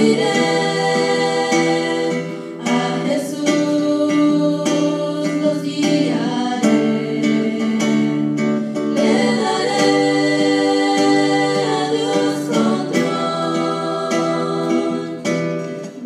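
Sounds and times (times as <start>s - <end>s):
girls singing in long notes: 0.0s - 15.7s
acoustic guitar chords: 0.0s - 16.0s.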